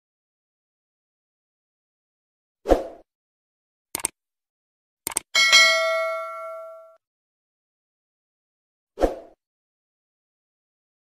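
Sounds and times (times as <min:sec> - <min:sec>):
button clicks: 0:05.1 - 0:05.3
notification bell ding: 0:05.4 - 0:07.0.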